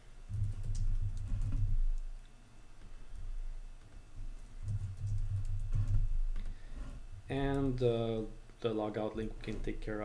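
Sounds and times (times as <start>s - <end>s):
computer keyboard typing: 0.3s - 2.1s, 4.6s - 6.0s.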